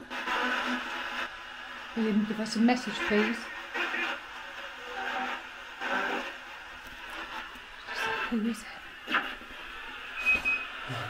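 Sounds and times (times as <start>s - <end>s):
radio static and broadcast bursts: 0.0s - 11.0s.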